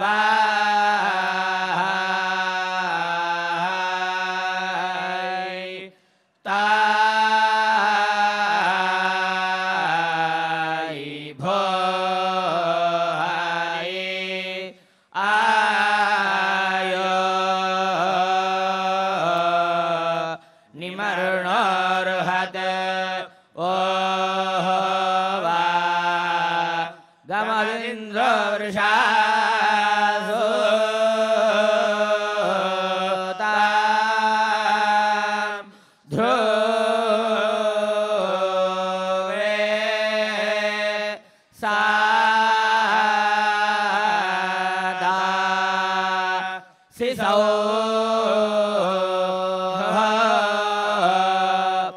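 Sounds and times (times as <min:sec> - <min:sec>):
man chanting through a microphone: 0:00.0 - 0:51.9.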